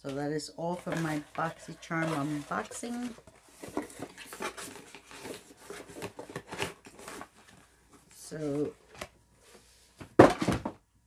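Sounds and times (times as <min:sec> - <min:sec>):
objects and packaging handled: 0:00.0 - 0:10.8.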